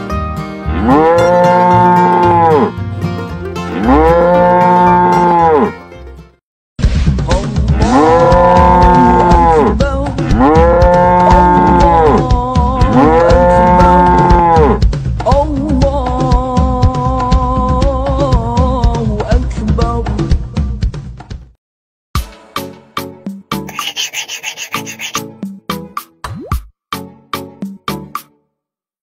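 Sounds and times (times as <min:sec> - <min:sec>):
cow mooing: 0:00.7 - 0:02.7, 0:03.7 - 0:05.7, 0:07.8 - 0:09.7, 0:10.3 - 0:12.2, 0:12.8 - 0:14.8.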